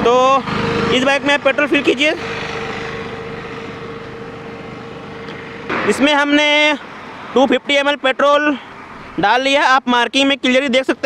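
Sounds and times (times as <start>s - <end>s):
vehicle passing with hum: 0.0s - 11.0s.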